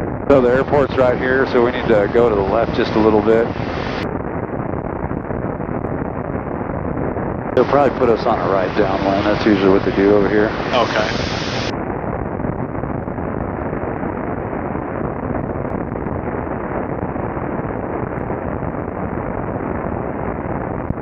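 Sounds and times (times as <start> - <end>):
muffled rush of airflow: 0.0 - 21.0.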